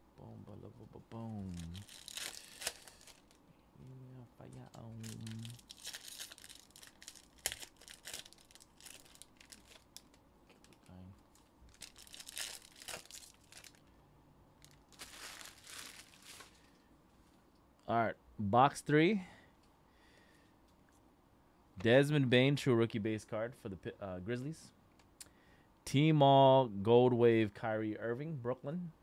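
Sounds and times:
wrappers tearing and crinkling: 1.3 - 3.4, 4.7 - 13.8, 14.6 - 16.8
man murmuring: 3.8 - 5.6.

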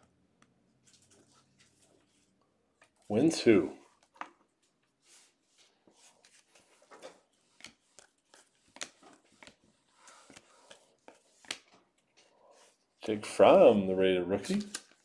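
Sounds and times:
trading cards clicking and rustling: 6.2 - 11.8, 14.4 - 15.0.

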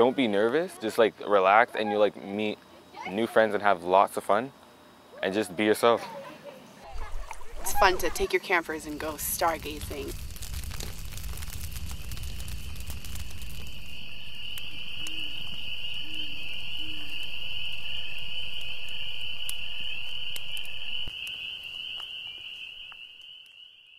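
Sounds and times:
insects trilling: 0.0 - 23.9.

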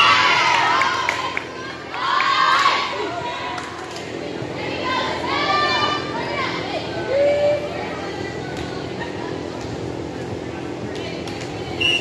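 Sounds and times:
young people calling and chattering: 0.0 - 12.0.

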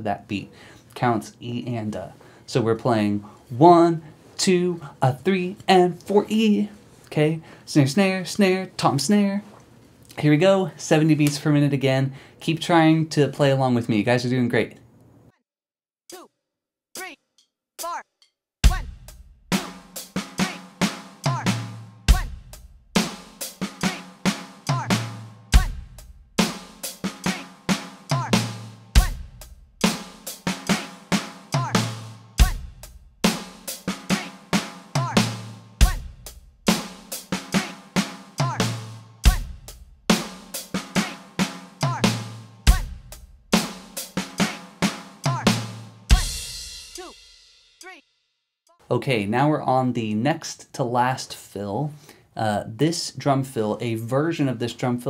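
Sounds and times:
electronic drum kit rock groove: 18.6 - 48.0.

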